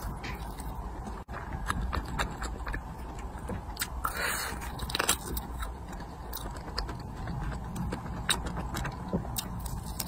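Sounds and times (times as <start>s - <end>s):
wet chewing with mouth clicks: 0.0s - 10.0s.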